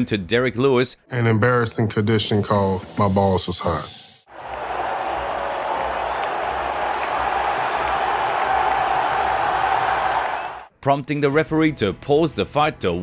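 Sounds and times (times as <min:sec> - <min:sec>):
arena crowd cheering: 0:04.3 - 0:10.7.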